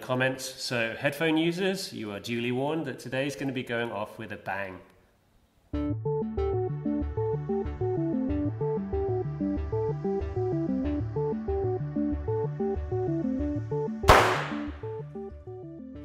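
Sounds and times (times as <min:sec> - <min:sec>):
background music: 0:05.7 - 0:16.0
loud bang of igniting bubbles: 0:14.1 - 0:14.8.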